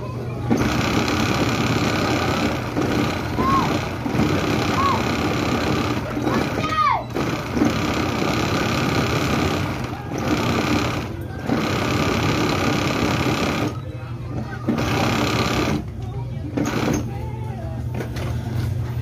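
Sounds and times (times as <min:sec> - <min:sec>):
industrial sewing machine stitching: 0:00.5 - 0:13.8, 0:14.7 - 0:15.8, 0:16.6 - 0:17.1.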